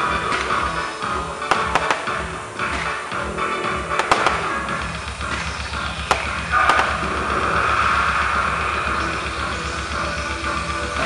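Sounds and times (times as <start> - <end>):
firework bangs: 0.0 - 9.0
background music with low beat: 0.0 - 11.0.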